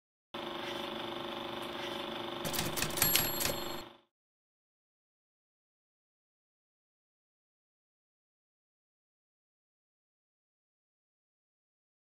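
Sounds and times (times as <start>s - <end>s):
electronic clicks: 2.5s - 3.9s.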